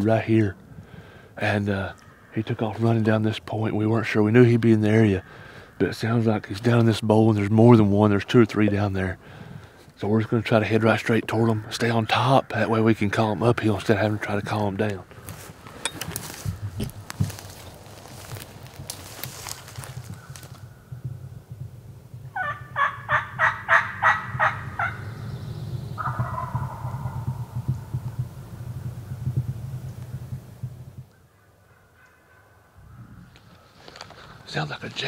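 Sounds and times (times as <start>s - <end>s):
footsteps rustling in forest litter: 15.0s - 20.8s, 33.2s - 35.0s
wild turkey gobbling: 22.3s - 28.2s.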